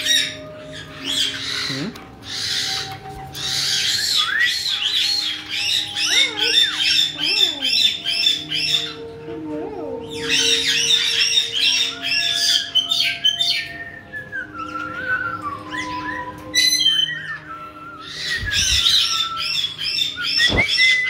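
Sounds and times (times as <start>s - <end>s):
parrots chattering and squawking: 0.0s - 13.8s, 14.6s - 21.0s.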